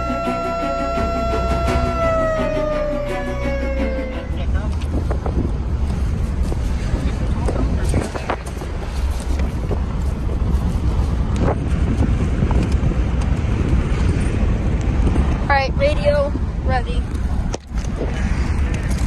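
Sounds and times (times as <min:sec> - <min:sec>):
engine and road rumble: 0:00.0 - 0:19.0.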